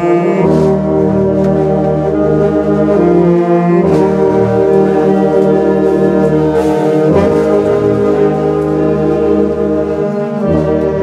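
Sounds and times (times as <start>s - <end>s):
tuba bass notes: 0.0s - 11.0s
wind band playing chords: 0.0s - 11.0s.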